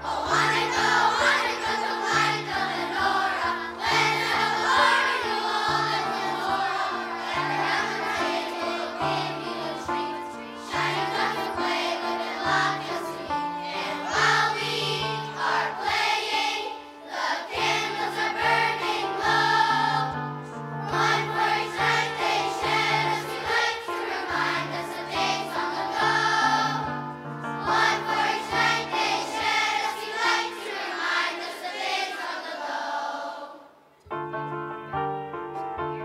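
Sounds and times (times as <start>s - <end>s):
choir breaths: 0.0s - 33.8s
children's choir singing: 0.0s - 33.9s.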